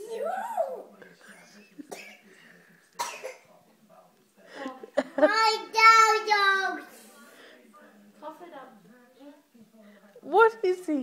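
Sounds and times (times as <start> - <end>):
toddler coughing: 1.9 - 2.2, 3.0 - 3.4.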